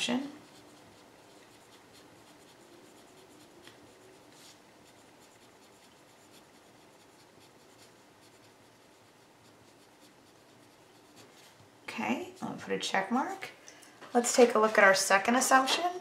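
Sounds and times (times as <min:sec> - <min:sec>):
pen scratching on paper: 0:00.0 - 0:13.4.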